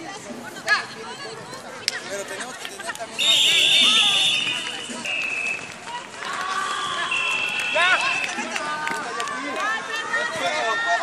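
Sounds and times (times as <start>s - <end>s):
people shouting outdoors: 3.0s - 11.0s
high steady whistle tone: 3.2s - 5.7s, 6.6s - 8.4s.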